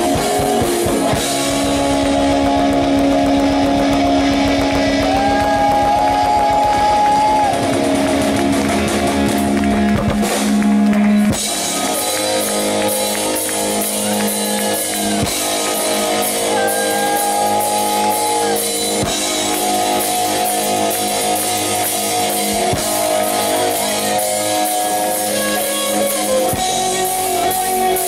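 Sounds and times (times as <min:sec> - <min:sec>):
bass guitar: 0:00.0 - 0:28.0
drum kit: 0:00.0 - 0:28.0
electric guitar: 0:00.0 - 0:28.0.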